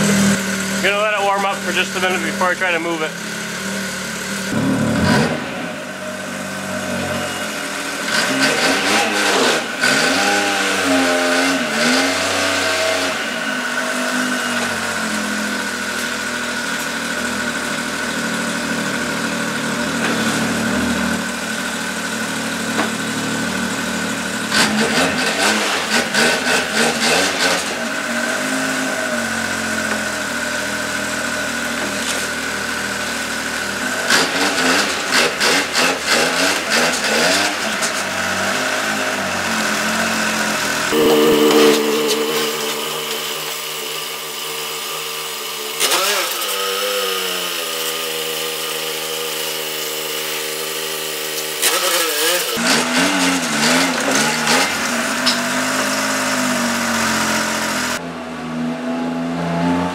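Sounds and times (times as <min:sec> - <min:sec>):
snowmobile engine idling: 0:00.0 - 0:08.8, 0:13.1 - 0:36.1
engine throttle blips: 0:00.0 - 0:35.8, 0:38.9 - 0:46.0.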